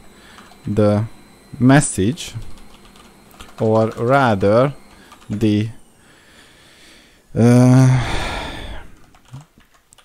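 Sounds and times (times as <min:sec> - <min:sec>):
computer keyboard keystrokes: 0:02.6 - 0:03.6, 0:09.0 - 0:10.0
breathy exhale: 0:06.0 - 0:09.0.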